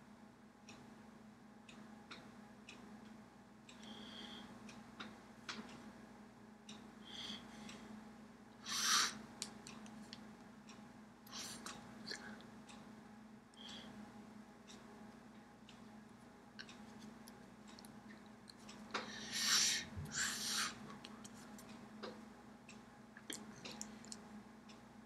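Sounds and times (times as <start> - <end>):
low steady hum: 0.0 - 25.0
breathy hiss: 8.6 - 9.2, 19.0 - 20.9.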